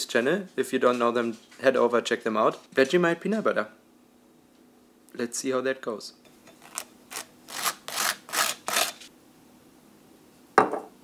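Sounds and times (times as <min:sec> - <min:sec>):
knife scraping on dry toast: 0:06.5 - 0:09.1.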